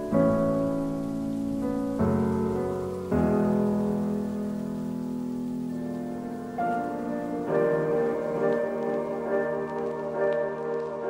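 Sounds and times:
soft keyboard chords: 0.0 - 11.0.

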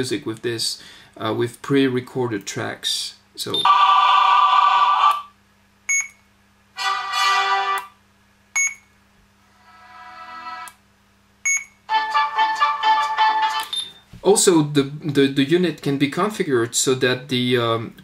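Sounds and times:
music snippets through small speaker: 6.8 - 8.0, 11.9 - 13.8.

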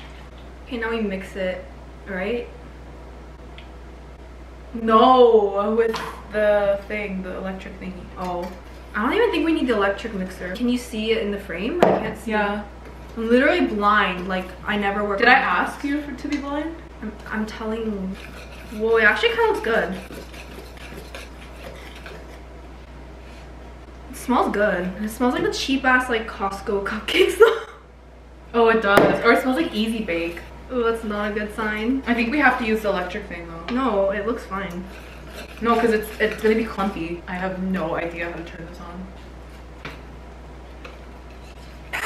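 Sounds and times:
utensil scraping metal bowl: 17.1 - 22.5, 32.3 - 37.3.

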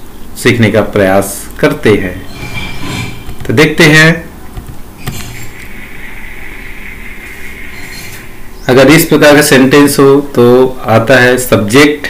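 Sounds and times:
high-pitched whine: 0.0 - 10.8
steady background hiss: 0.0 - 12.0.

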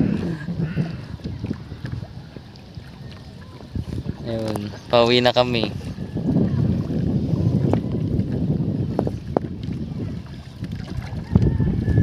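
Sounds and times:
water noise: 0.0 - 12.0
wind on microphone: 0.0 - 12.0.

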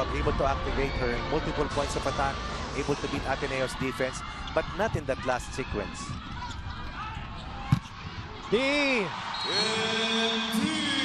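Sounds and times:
arena crowd noise: 0.0 - 11.0.

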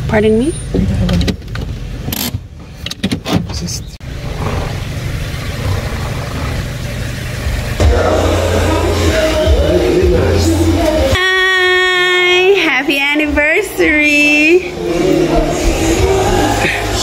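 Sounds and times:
car engine idling: 4.0 - 11.4
loud low hum: 4.0 - 17.0.

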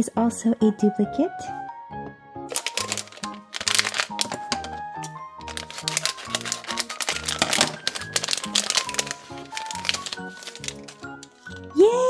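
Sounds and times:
cheerful background music: 0.0 - 12.0
foil packet crinkling: 2.5 - 11.7.

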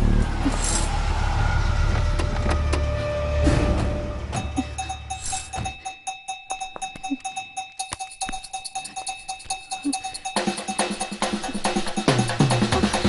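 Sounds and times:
tense film score: 0.0 - 6.1.

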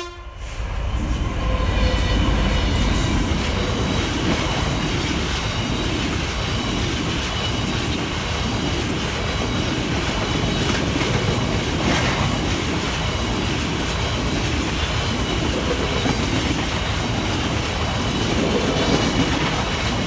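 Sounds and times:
diesel locomotive engine: 0.0 - 20.0
train wagons rumbling: 0.0 - 20.0.

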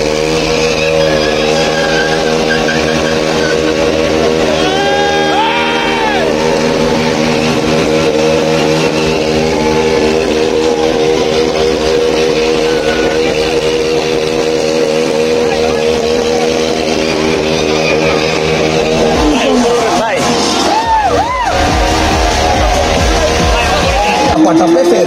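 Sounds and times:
motorcycle engine at high revs: 0.0 - 25.0.

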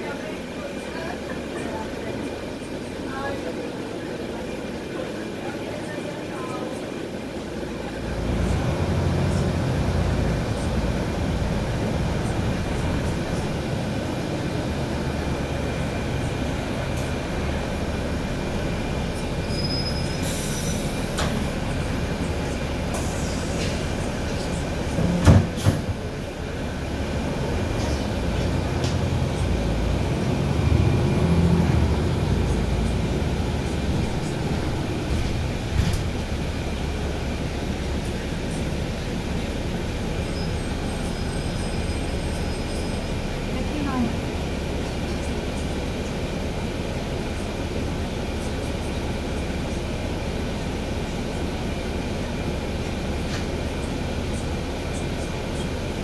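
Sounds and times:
bus engine rumble: 0.0 - 56.0.

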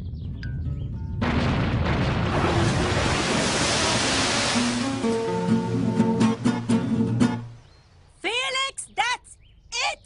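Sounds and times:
cartoon rushing water: 2.1 - 6.8.

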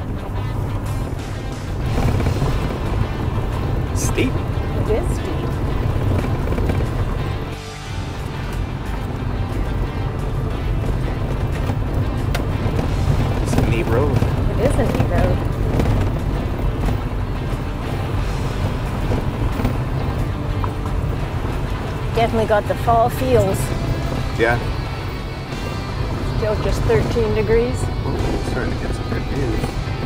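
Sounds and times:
music playing: 0.0 - 30.0
truck engine and tyres on gravel: 0.0 - 30.0.

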